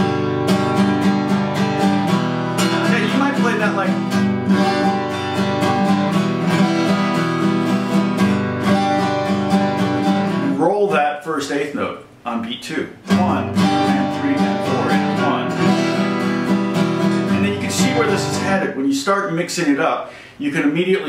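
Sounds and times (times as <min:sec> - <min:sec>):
acoustic guitar strumming: 0:00.0 - 0:18.8.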